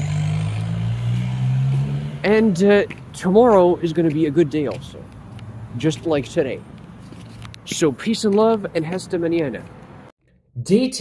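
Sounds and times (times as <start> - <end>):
vehicle engine droning: 0.0 - 10.1.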